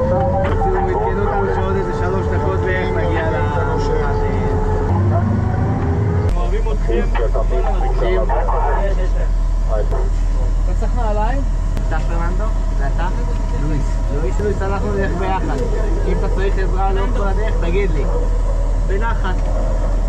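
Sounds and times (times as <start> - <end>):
men talking and calling out: 0.0 - 20.0
vehicle engine drone: 0.0 - 20.0.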